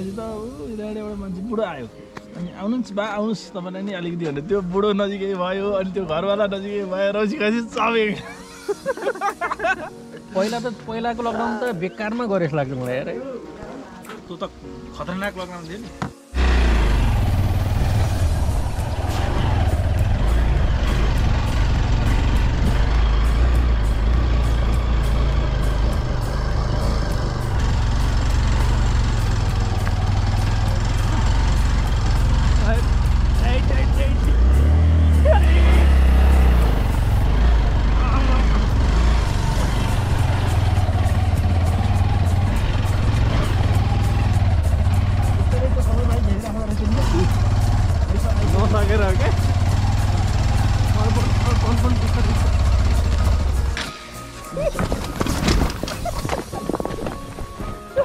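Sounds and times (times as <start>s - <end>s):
motorcycle engine rumbling: 16.0s - 53.9s
jolting on stony surface: 54.7s - 57.2s.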